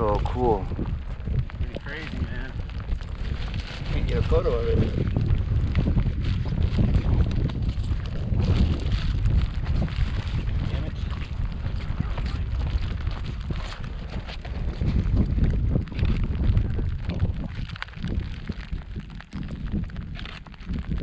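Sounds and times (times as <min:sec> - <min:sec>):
plastic poncho rustling: 0:00.0 - 0:21.0
wind buffeting microphone: 0:00.0 - 0:21.0.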